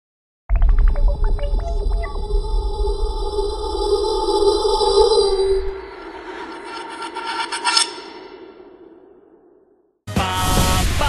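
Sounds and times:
grainy rasping electronic shimmer: 1.7s - 9.3s.

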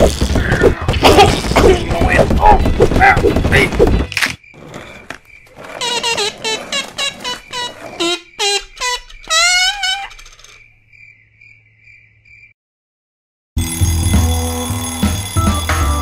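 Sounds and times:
hedgehog squeaking: 5.8s - 10.7s.

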